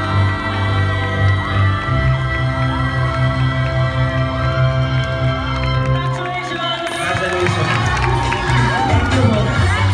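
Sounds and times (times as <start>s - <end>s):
group of singers singing: 0.0s - 5.3s
audience cheering: 5.4s - 9.9s.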